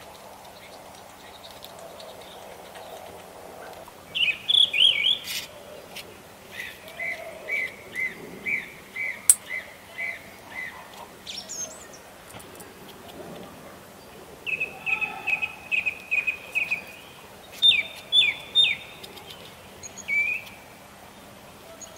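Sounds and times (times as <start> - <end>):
songbird singing: 3.8 - 12.9, 14.0 - 21.9.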